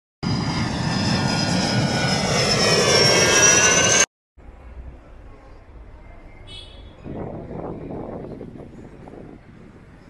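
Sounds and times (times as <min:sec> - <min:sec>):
airplane flying over: 0:00.2 - 0:04.1.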